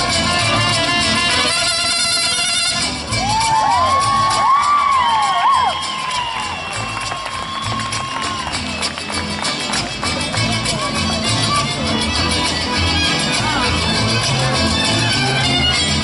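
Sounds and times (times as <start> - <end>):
mariachi band playing: 0.0 - 16.0
crowd cheering: 3.1 - 10.4
rising and falling whoops: 3.2 - 8.7.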